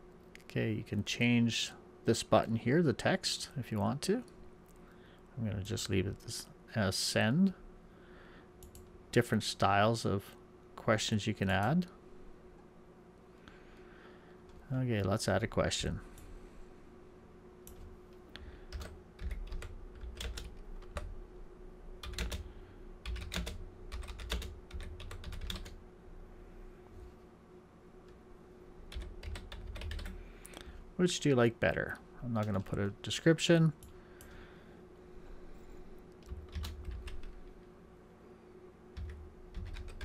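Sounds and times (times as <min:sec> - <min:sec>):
typing on keyboard: 0:18.7 - 0:21.1, 0:22.0 - 0:22.4, 0:23.0 - 0:25.8, 0:28.9 - 0:30.2, 0:36.3 - 0:37.4, 0:39.0 - 0:40.0.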